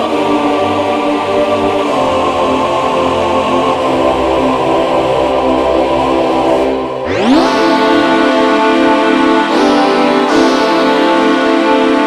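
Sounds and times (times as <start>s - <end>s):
synthesizer sustained chord: 6.6s - 12.0s
low bass note: 7.0s - 12.0s.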